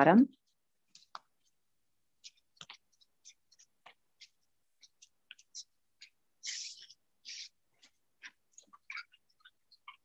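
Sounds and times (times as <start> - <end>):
brush scratching on paper: 0.3 - 10.0.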